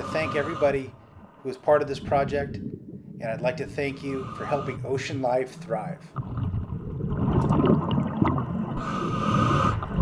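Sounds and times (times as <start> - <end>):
hissing inhalation: 0.0 - 0.9, 4.0 - 5.0, 8.8 - 9.8
regulator bubbling rumble: 4.7 - 8.8.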